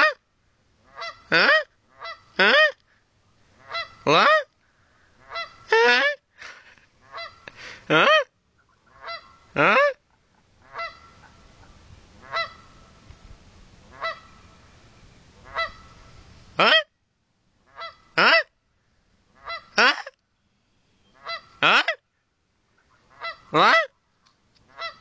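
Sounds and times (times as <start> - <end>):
steady low noise: 0.2 - 24.8
goose honking: 0.8 - 2.8, 3.5 - 4.5, 5.2 - 6.2, 7.0 - 10.0, 10.6 - 13.0, 13.8 - 14.5, 15.4 - 16.9, 17.6 - 18.5, 19.3 - 20.1, 21.1 - 22.0, 22.8 - 24.0, 24.7 - 25.0
person imitating honks: 1.3 - 1.7, 2.4 - 2.8, 4.1 - 4.5, 7.9 - 8.3, 9.6 - 10.0, 19.8 - 20.2, 21.6 - 22.0.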